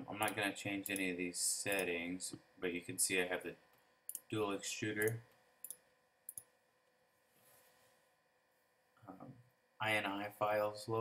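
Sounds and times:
computer mouse clicks: 0:04.1 - 0:04.3, 0:05.0 - 0:06.5.

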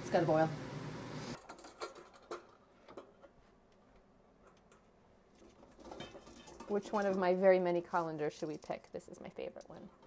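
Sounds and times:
metal bowls clicking and tapping: 0:05.5 - 0:10.0.

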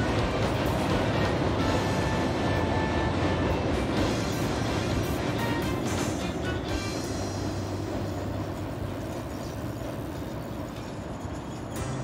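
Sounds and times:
train rumbling: 0:00.0 - 0:12.0.

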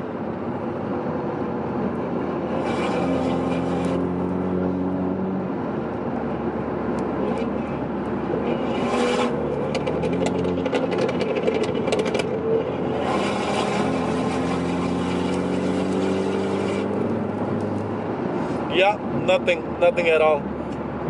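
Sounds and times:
car engines running: 0:00.0 - 0:21.0
exhaust crackles and pops: 0:06.9 - 0:17.9.

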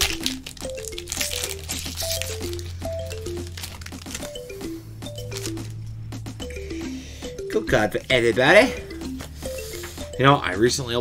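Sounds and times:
foil wrapper crinkling: 0:00.0 - 0:04.4, 0:05.2 - 0:05.7
background music with bass: 0:00.0 - 0:11.0.

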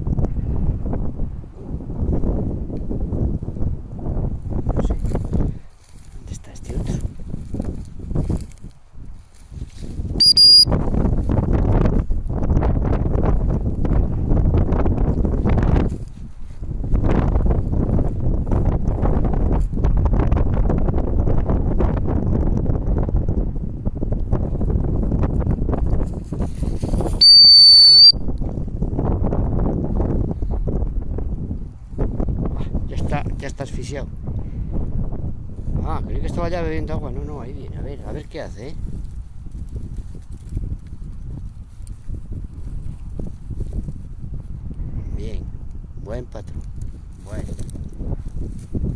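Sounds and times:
wind noise on microphone: 0:00.0 - 0:48.9
dog training whistle: 0:10.2 - 0:10.7, 0:27.2 - 0:28.2.

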